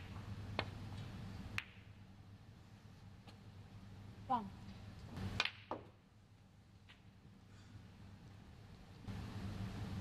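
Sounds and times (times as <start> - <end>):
snooker balls clicking: 0.0 - 2.0, 4.9 - 6.0
steady low hum: 0.0 - 10.0
cue tip striking ball: 1.5 - 1.9, 5.4 - 6.0.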